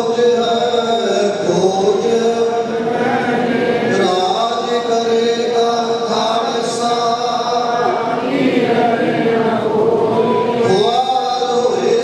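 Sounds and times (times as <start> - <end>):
man chanting over microphone: 0.0 - 12.0
voices joining chant: 0.2 - 12.0.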